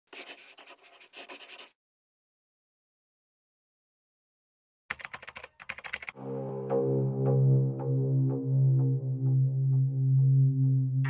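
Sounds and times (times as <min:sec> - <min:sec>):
pen scratching on paper: 0:00.1 - 0:01.8.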